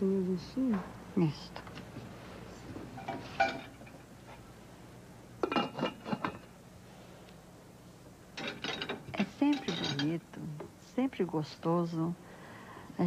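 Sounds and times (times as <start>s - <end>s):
dish and utensils clinking: 3.0s - 4.0s, 5.4s - 6.5s, 8.4s - 10.2s.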